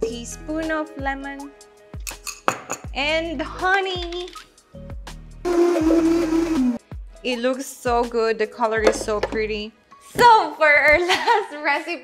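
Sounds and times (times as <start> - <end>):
blender whirring: 5.5 - 6.8.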